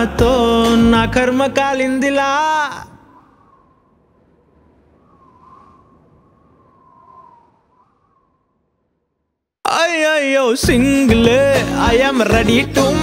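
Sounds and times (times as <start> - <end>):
music: 0.0 - 1.9, 10.6 - 13.0.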